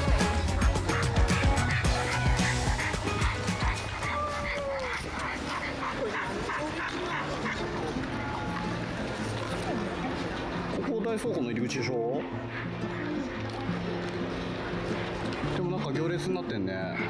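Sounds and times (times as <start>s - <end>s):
background music: 0.0s - 17.0s
dog barking and yipping: 1.7s - 7.8s.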